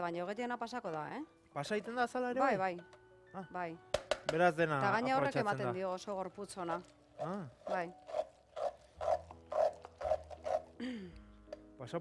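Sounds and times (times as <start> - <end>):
food mill scraping: 7.2 - 10.8.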